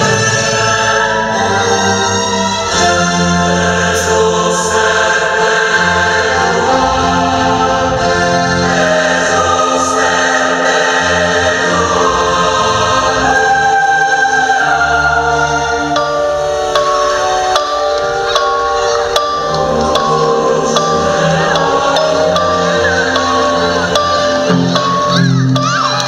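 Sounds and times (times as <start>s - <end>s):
choir singing sustained chords: 0.0s - 26.0s.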